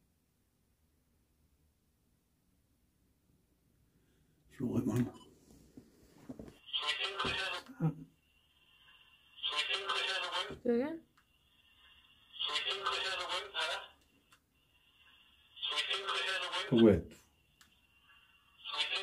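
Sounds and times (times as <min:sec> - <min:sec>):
garbled voice-like radio fragments: 0:06.6 - 0:07.9, 0:09.4 - 0:10.6, 0:12.3 - 0:14.0, 0:15.6 - 0:17.0, 0:18.6 - 0:19.0.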